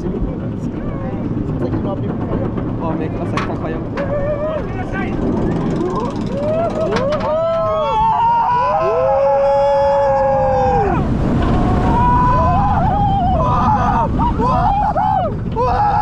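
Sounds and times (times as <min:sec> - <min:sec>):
roller coaster train on track: 0:00.0 - 0:16.0
rush of wind: 0:00.0 - 0:16.0
riders screaming: 0:05.6 - 0:16.0.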